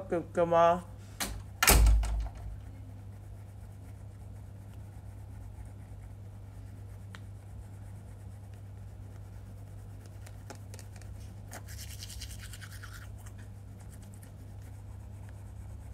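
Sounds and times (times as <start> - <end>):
steady low hum: 0.0 - 15.9
toothbrush scrubbing teeth: 2.7 - 15.9.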